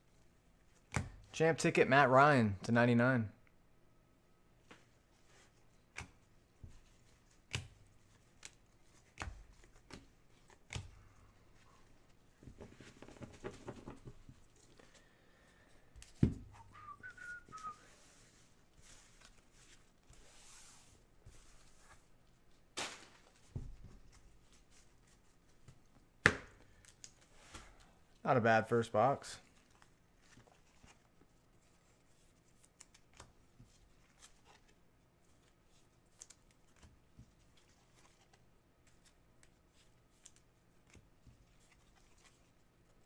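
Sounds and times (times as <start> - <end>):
person whistling: 16.5 - 18.0.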